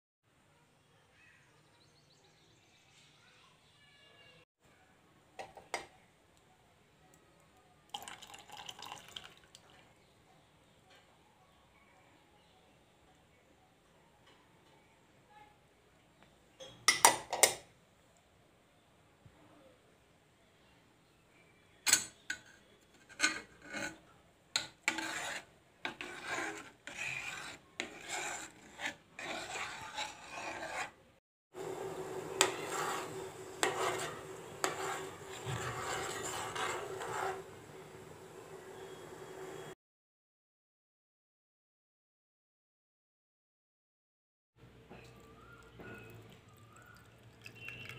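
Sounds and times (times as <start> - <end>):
spoon scraping a metal pot: 5.4 - 5.9, 21.9 - 31.0, 31.6 - 38.1, 45.0 - 47.9
liquid trickling into a pot: 7.9 - 10.0, 45.0 - 47.9.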